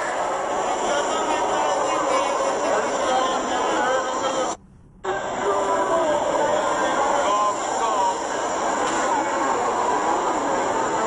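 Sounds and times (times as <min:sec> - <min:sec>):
crowd babble: 0:00.0 - 0:11.0.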